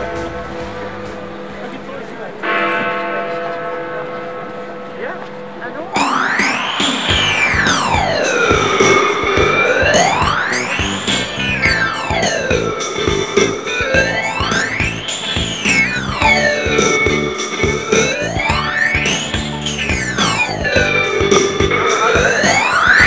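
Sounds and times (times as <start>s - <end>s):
steady electronic beat: 0.0s - 2.6s, 5.8s - 23.0s
synthesizer tone sweeping in pitch: 6.0s - 23.0s.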